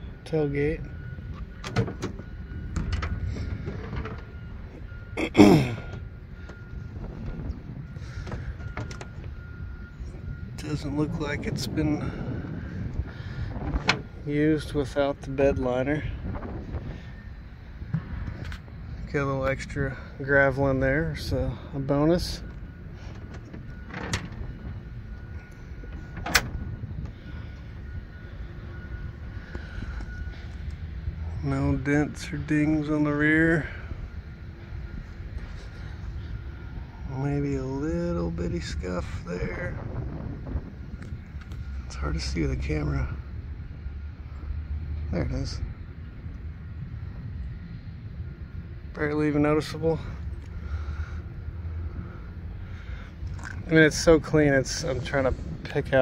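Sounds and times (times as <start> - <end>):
low rumbling: 0.0 - 56.0
tailgate latch clicks: 26.2 - 26.6.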